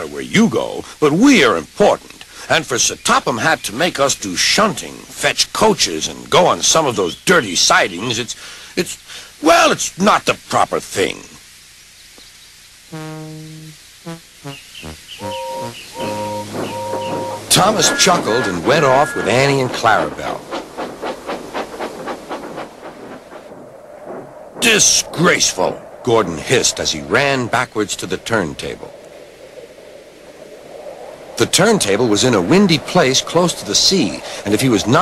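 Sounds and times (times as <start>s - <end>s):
steady hiss: 0.0s - 35.0s.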